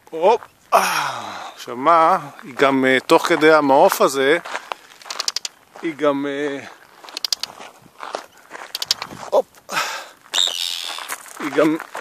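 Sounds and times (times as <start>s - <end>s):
tern alarm calls: 5.0s - 5.8s, 6.7s - 7.6s, 8.2s - 9.2s, 10.3s - 11.2s.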